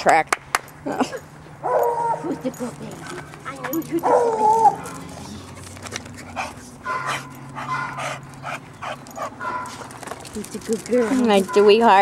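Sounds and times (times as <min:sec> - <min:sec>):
dog barking rapidly: 0:01.6 - 0:02.3, 0:03.0 - 0:05.3, 0:06.8 - 0:09.9, 0:11.0 - 0:12.0.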